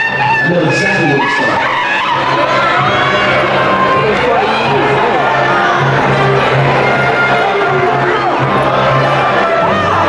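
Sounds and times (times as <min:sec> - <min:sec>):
crowd cheering and screaming: 0:00.0 - 0:10.0
high-pitched screams: 0:00.0 - 0:10.0
loud shouting: 0:00.0 - 0:10.0.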